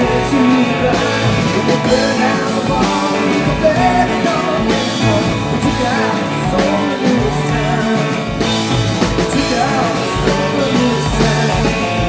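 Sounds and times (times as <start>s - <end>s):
bass guitar: 0.0s - 12.0s
drums: 0.0s - 12.0s
electric guitars: 0.0s - 12.0s.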